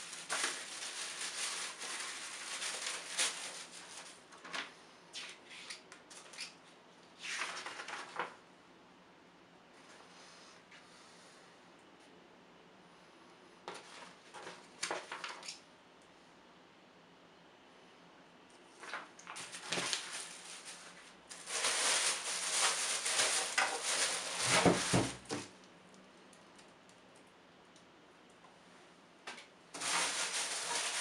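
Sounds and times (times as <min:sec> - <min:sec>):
plastic wrapping crinkling: 0:00.0 - 0:04.6, 0:18.8 - 0:25.5, 0:29.7 - 0:31.0.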